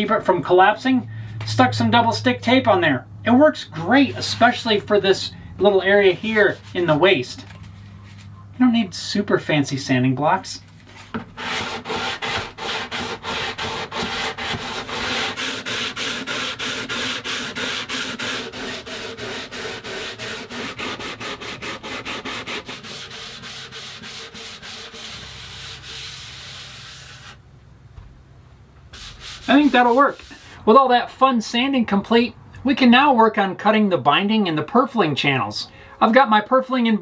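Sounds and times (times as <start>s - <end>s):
sandpaper rubbing on wood: 3.9s - 7.1s, 11.4s - 27.4s, 28.9s - 30.6s.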